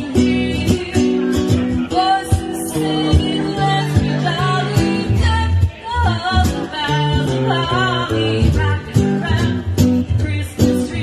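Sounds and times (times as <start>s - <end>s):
acoustic guitar: 0.0s - 11.0s
woman singing into a microphone: 0.0s - 11.0s.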